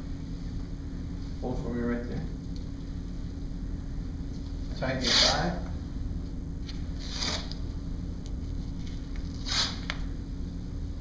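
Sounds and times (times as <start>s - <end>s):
elastic bandage rasping: 5.0s - 5.4s, 7.0s - 7.6s, 9.2s - 10.1s.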